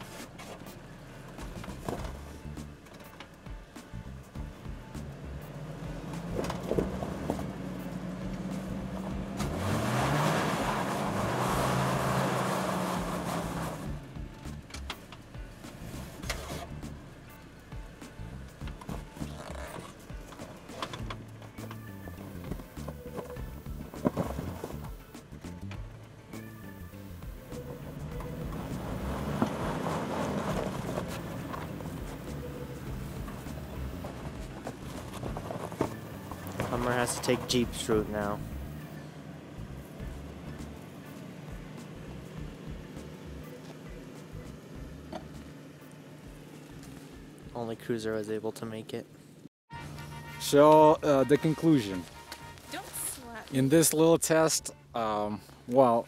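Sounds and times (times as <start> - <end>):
tyres grinding over ground: 0.0 - 49.2
engine labouring and revving: 0.0 - 56.0
tyres spinning in loose sand: 27.5 - 38.8.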